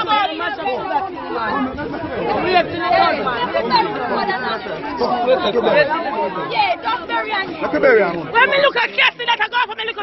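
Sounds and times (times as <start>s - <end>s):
crowd talking over each other: 0.0s - 10.0s.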